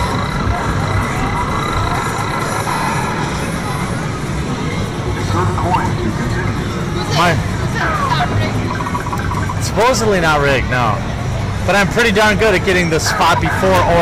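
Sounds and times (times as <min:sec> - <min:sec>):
gliding electronic sound effects: 0:08.4 - 0:10.2
arcade game electronic music: 0:08.5 - 0:10.1.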